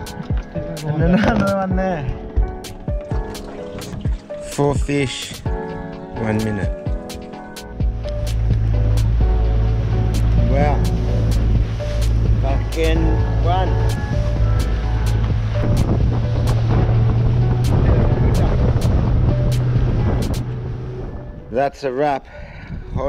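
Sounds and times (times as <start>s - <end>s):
music with regular beat: 0.0s - 20.6s
voice: 0.8s - 2.1s, 12.4s - 13.8s
outboard motor droning: 7.9s - 21.4s.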